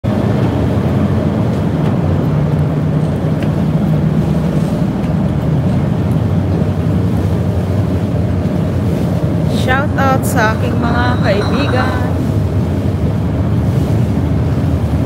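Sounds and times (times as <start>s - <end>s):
ship engines droning: 0.1s - 15.0s.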